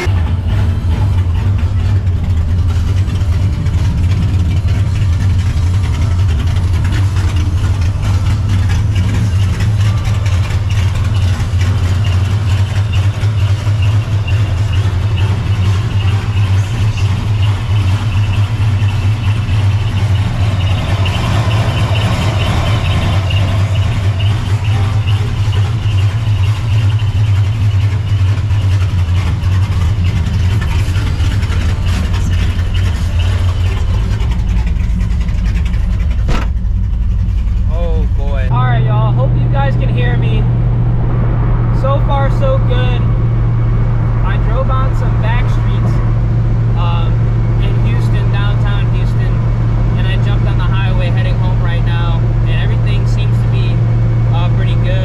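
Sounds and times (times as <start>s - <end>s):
car engine idling: 0.0s - 55.0s
car door thump: 36.3s - 36.6s.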